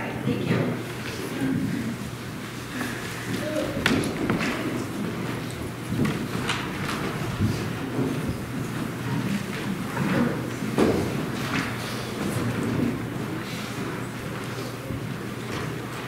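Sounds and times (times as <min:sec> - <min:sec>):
knocks and thumps: 0:03.3 - 0:13.2.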